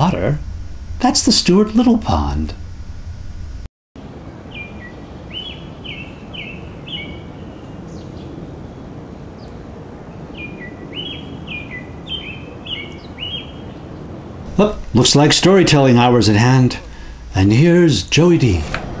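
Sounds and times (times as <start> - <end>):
robin singing: 4.3 - 17.0.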